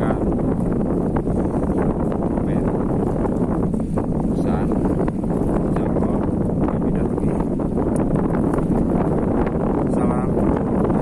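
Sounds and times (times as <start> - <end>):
strong wind buffeting microphone: 0.0 - 11.0
man talking: 4.3 - 4.8, 5.7 - 7.5, 9.9 - 10.4.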